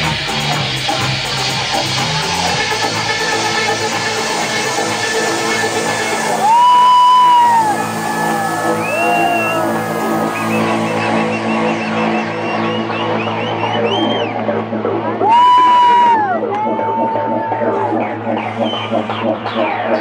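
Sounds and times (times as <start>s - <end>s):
electronic dance music: 0.0s - 20.0s
loud held high tones: 5.8s - 11.4s
crowd whooping: 5.8s - 20.0s.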